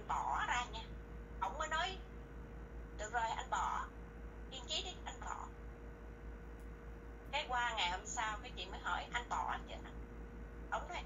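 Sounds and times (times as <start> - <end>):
woman talking: 0.0 - 2.0, 3.0 - 3.9, 4.5 - 5.5, 7.3 - 9.9, 10.7 - 11.0.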